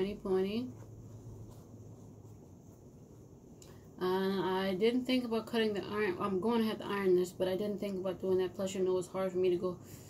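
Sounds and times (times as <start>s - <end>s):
low steady hum: 0.0s - 10.0s
faint short rustle: 0.7s - 3.2s.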